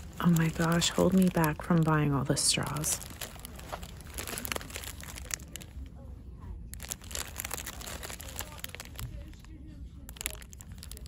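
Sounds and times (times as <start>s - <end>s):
plastic packs crinkling: 0.0s - 6.0s, 6.7s - 11.0s.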